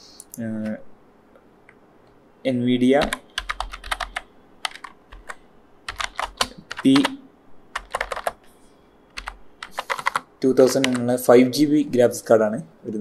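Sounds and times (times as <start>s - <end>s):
typing on computer keyboard: 3.0s - 8.4s, 9.1s - 11.1s.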